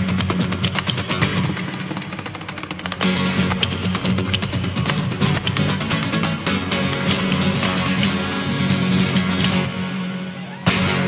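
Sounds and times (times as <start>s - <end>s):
fingerstyle acoustic guitar: 0.0s - 9.8s.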